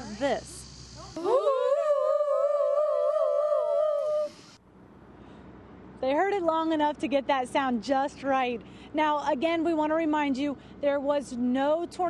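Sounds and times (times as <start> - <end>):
person imitating siren wail: 1.2 - 4.4.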